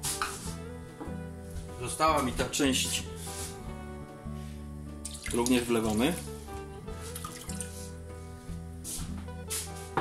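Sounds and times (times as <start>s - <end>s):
background music: 0.0s - 10.0s
liquid pouring into a pot: 5.1s - 6.2s, 7.2s - 7.7s.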